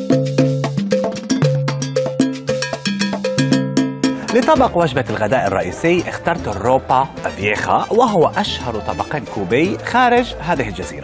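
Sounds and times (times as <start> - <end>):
quick percussion strikes: 0.0 - 6.6.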